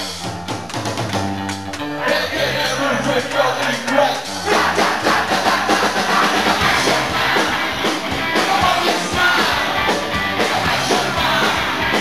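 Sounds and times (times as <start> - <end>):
live rock band playing: 0.0 - 2.0, 4.4 - 12.0.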